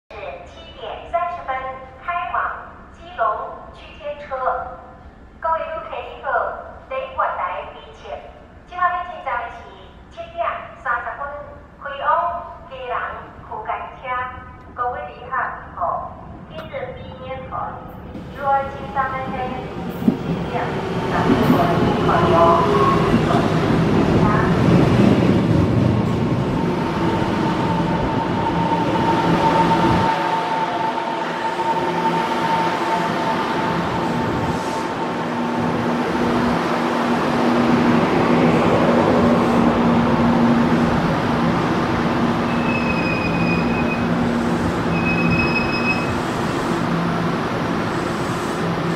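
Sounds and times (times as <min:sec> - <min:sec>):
train rolling rumble: 0:16.2 - 0:48.9
short high beeps: 0:44.9 - 0:46.2.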